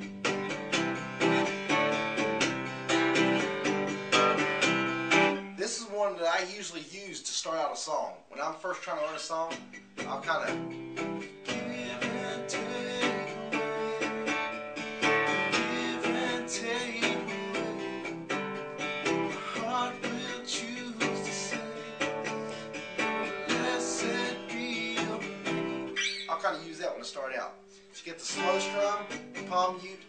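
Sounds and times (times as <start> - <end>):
acoustic guitar strumming: 0.0 - 7.0, 8.6 - 30.0.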